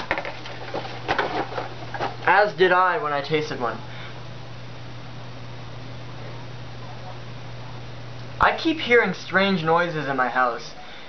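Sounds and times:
cardboard and wrapping rustling: 0.0s - 2.4s
steady low hum: 0.0s - 11.0s.

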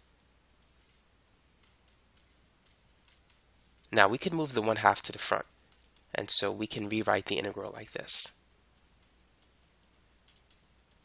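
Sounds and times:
pen scratching while writing: 0.6s - 3.8s, 8.8s - 11.0s
man speaking: 3.9s - 5.5s, 6.1s - 8.4s.

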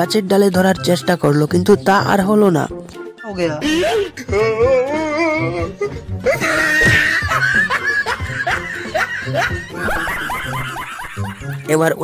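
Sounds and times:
background music: 0.0s - 12.0s
man laughing hard: 5.4s - 11.7s.

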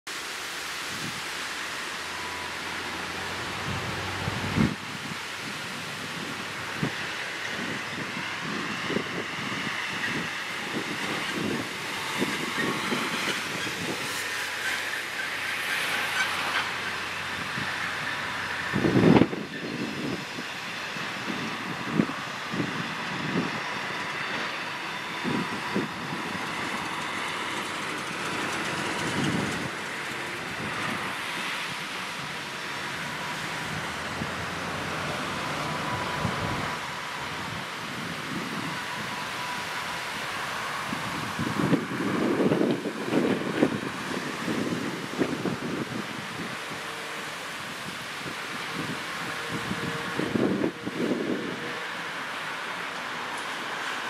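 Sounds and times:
locomotive engine hum: 0.1s - 54.0s
wheels clanking on track: 0.1s - 54.0s
wheel flanges squealing: 7.0s - 20.3s.

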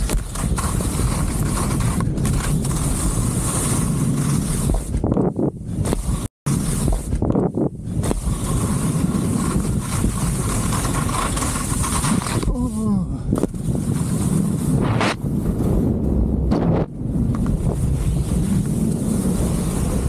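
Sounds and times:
skis rushing over snow: 0.0s - 20.0s
wind buffeting microphone: 0.0s - 20.0s.

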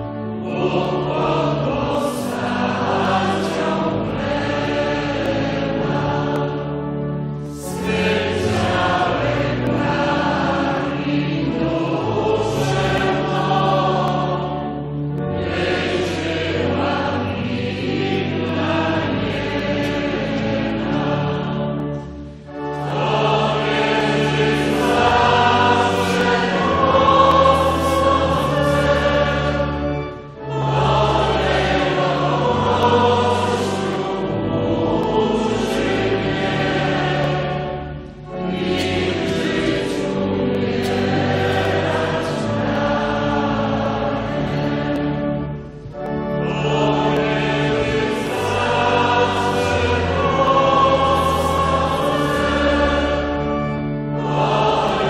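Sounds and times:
choir singing a hymn: 0.0s - 55.0s
low accompaniment: 0.0s - 55.0s.

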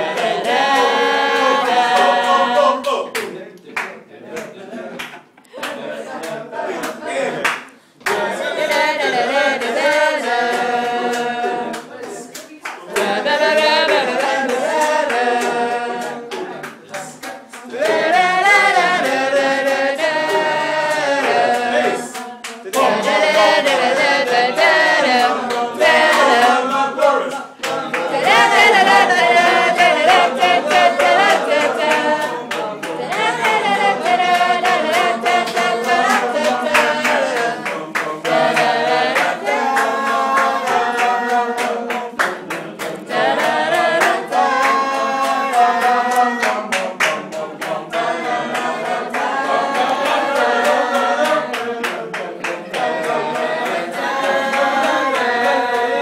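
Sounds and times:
group of voices singing: 0.0s - 56.0s
hand claps: 0.1s - 56.0s.

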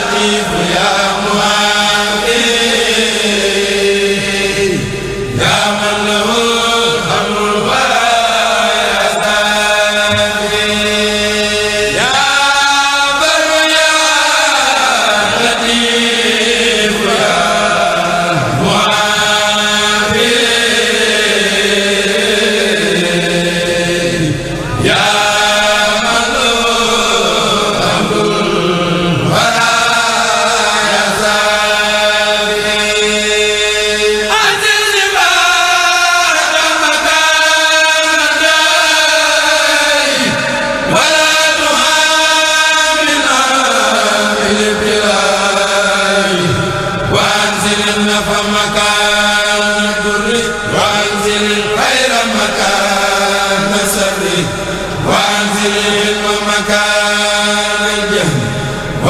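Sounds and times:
men chanting into microphones: 0.0s - 59.0s.

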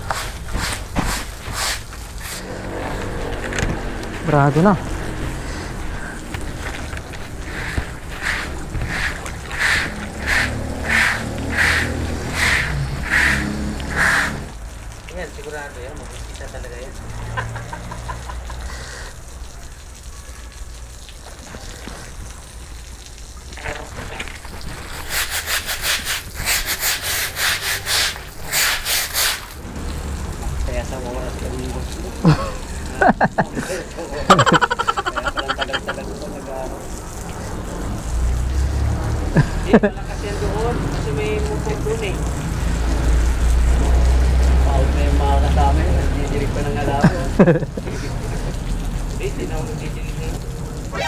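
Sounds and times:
scrubbing wet concrete: 0.0s - 14.7s, 23.4s - 29.6s, 30.8s - 51.0s.

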